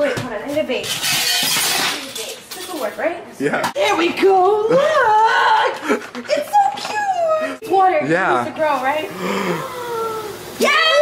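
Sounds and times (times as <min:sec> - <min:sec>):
metal utensils clattering: 0:00.5 - 0:03.1.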